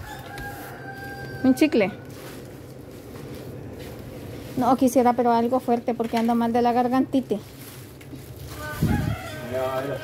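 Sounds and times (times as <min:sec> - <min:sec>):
rooster crowing: 0:00.0 - 0:01.9, 0:08.5 - 0:10.0.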